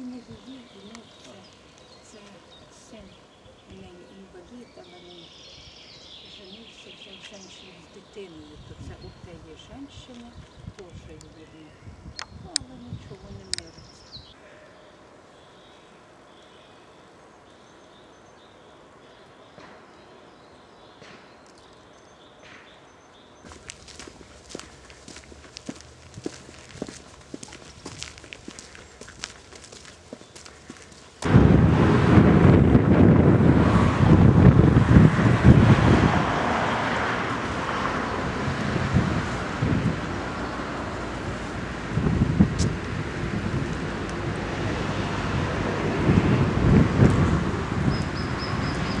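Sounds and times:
wind noise on microphone: 0:08.4 - 0:14.3, 0:23.5 - 0:49.0
footsteps on dirt path: 0:23.4 - 0:31.3.

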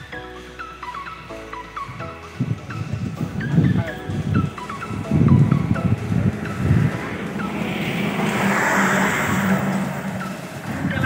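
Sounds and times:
motor vehicle running: 0:00.0 - 0:11.0
wind on microphone: 0:01.8 - 0:11.0.

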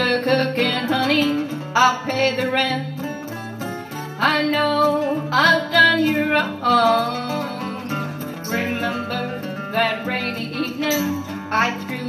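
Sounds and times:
woman singing: 0:00.0 - 0:03.2, 0:04.2 - 0:12.0
acoustic guitars strumming: 0:00.0 - 0:12.0.

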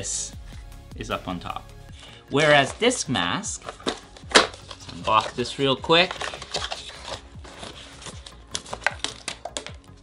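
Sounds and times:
cardboard crinkling: 0:02.4 - 0:10.0.

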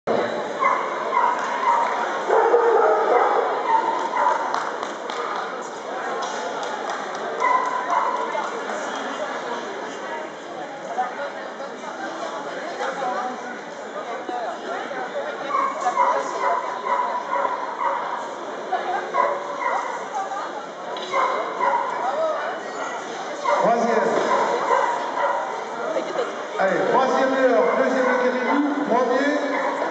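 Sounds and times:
crowd chatter: 0:00.0 - 0:29.9.

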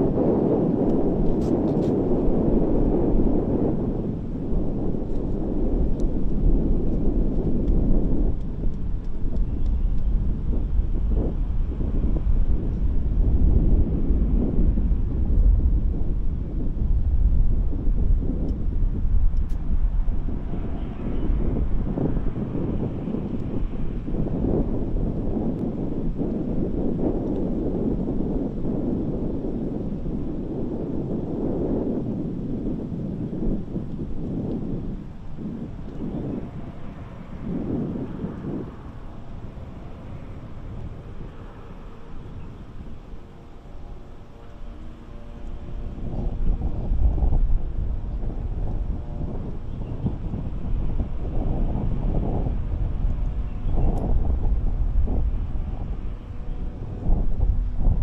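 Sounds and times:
low outdoor rumble: 0:00.0 - 0:58.0.

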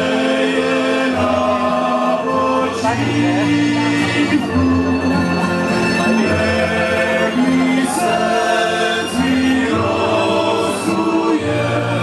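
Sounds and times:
guitars: 0:00.0 - 0:12.0
male choir singing in harmony: 0:00.0 - 0:12.0.

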